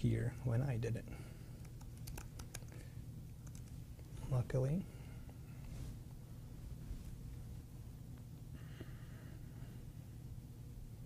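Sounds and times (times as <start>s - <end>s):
laptop keyboard typing: 1.6s - 2.8s, 3.4s - 3.8s.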